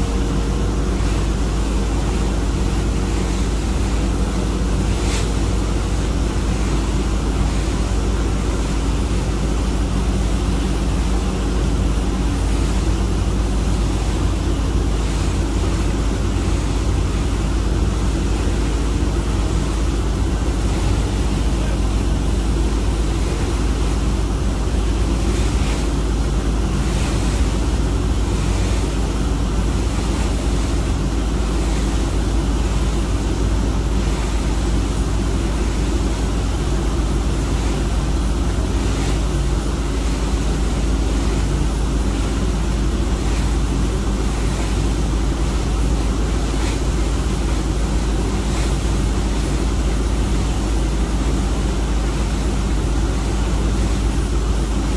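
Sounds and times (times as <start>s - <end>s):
low engine drone: 0.0s - 54.9s
water churning: 0.0s - 54.9s.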